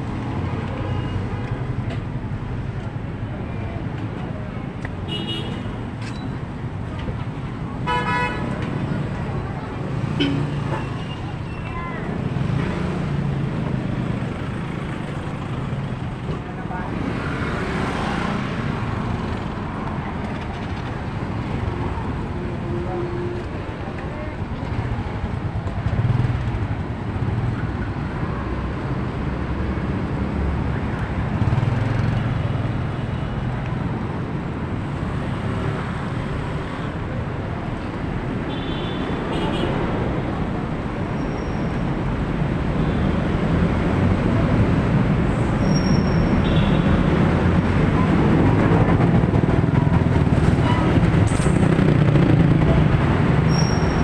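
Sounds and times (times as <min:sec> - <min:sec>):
traffic passing on wet road: 0:06.5 - 0:54.0.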